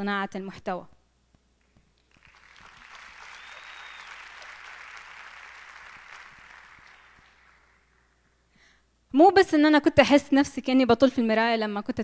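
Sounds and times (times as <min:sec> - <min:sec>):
audience applauding: 0:02.0 - 0:08.4.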